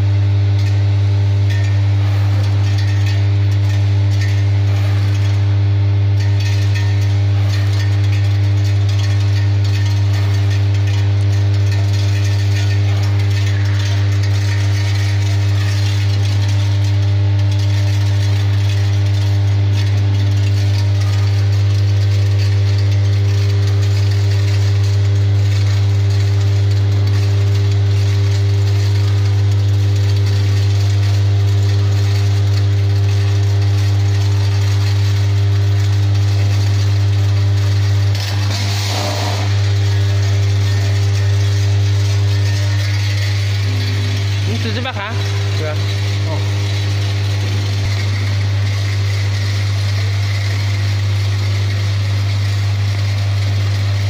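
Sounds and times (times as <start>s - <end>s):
machine low hum: 0.0s - 54.0s.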